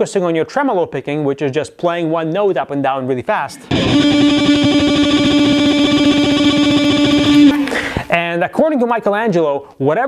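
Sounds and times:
electric guitar tremolo picking: 3.6s - 8.1s.

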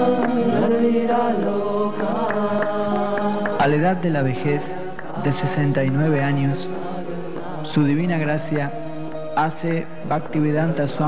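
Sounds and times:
percussion strikes: 0.0s - 10.6s
steady held drone tone: 0.0s - 11.0s
voices chanting: 0.0s - 11.0s.

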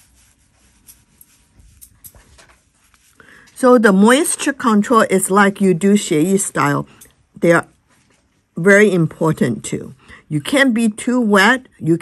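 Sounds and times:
brush strokes on paper: 0.0s - 3.4s.

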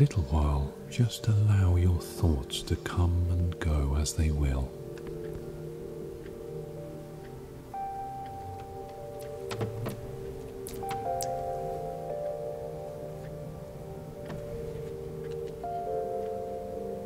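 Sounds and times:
sustained bell-like tones: 0.0s - 17.0s
faint clicks: 8.2s - 11.5s.

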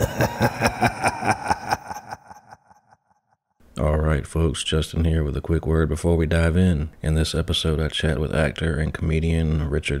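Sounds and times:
rapid pulsing laugh: 0.0s - 2.9s.

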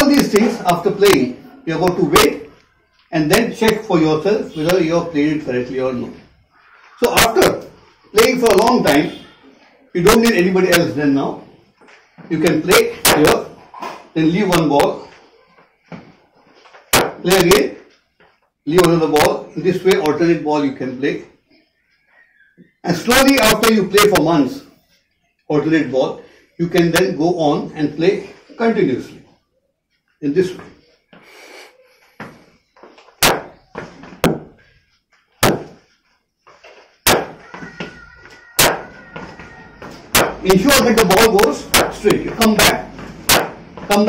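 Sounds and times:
cricket bat striking ball: 37.1s - 37.4s.

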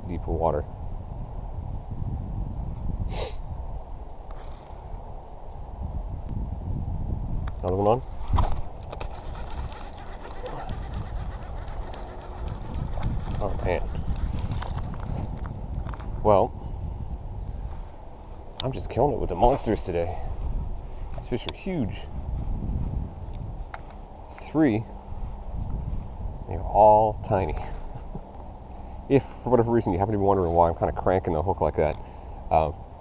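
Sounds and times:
wind rumbling on microphone: 0.0s - 33.0s.

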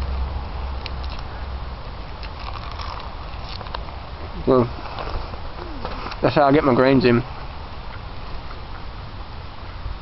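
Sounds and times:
lettuce leaves crunching: 2.2s - 3.8s.

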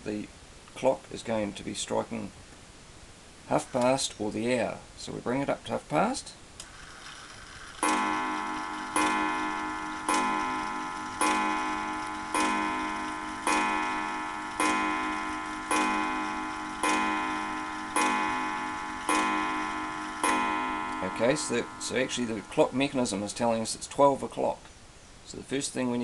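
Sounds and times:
mantel clock striking: 7.8s - 23.7s.

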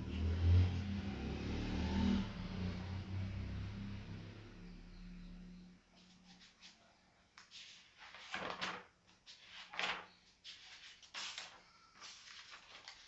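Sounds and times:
passing vehicle engine hum: 0.0s - 5.9s.

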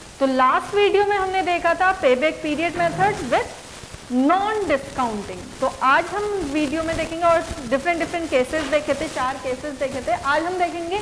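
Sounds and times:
steady hiss: 0.0s - 11.0s
woman lecturing: 0.2s - 11.0s.

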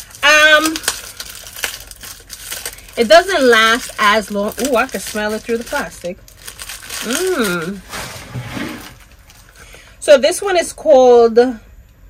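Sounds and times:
plastic wrapping crinkling: 0.0s - 9.8s.

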